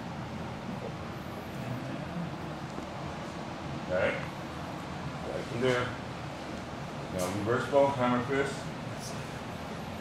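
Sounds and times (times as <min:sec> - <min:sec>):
room noise: 0:00.0 - 0:10.0.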